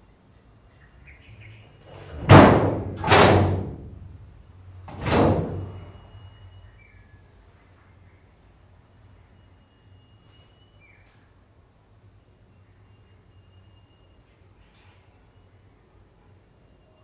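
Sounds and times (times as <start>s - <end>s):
loud slamming bangs: 1.9s - 6.2s.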